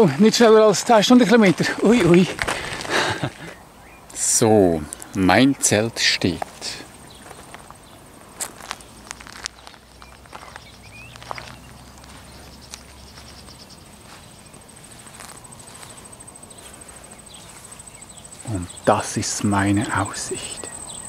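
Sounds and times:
crickets chirping: 0.0 - 21.0
soft footsteps: 6.2 - 20.7.

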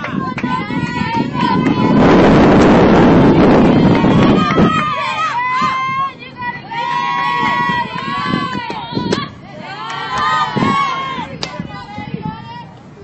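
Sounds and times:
players and fans cheering: 0.0 - 12.6.

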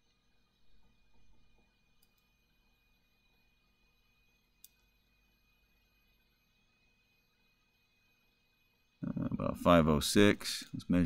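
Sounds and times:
faint click: 2.0 - 2.3, 4.6 - 4.9.

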